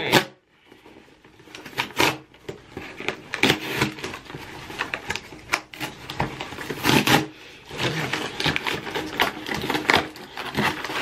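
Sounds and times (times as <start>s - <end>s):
cardboard box being torn open: 1.4s - 11.0s.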